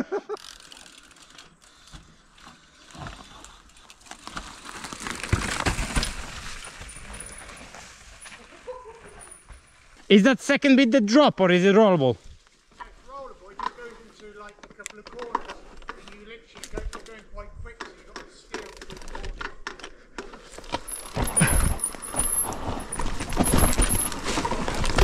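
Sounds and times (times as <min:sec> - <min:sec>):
bike frame and chain rattling: 0:00.3 - 0:08.4, 0:09.0 - 0:10.0, 0:18.3 - 0:25.0
bike tyres on loose dirt: 0:00.3 - 0:10.2, 0:20.2 - 0:25.0.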